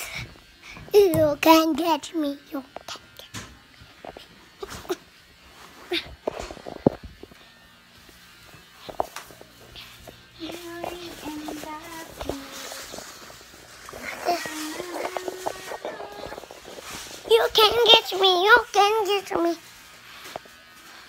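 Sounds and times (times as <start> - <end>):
young child singing: 10.4 - 13.0, 14.0 - 16.5.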